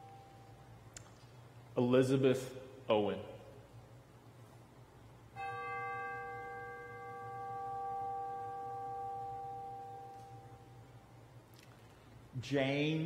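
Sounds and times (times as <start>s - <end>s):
bell ringing: 5.4s - 10.8s.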